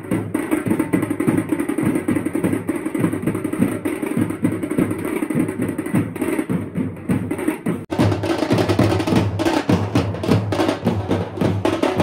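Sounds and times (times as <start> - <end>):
fast dense drumming: 0.0 - 12.0.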